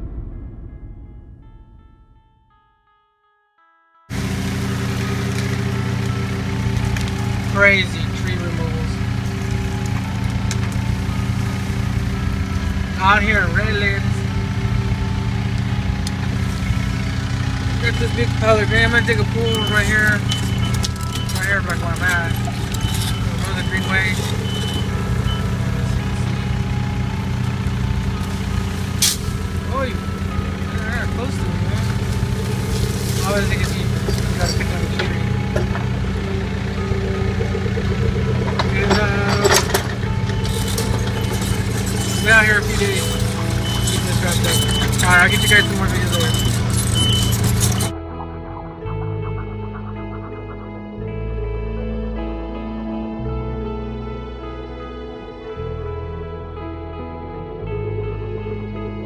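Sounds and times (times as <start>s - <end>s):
music: 0.0s - 59.0s
diesel engine running: 4.1s - 52.4s.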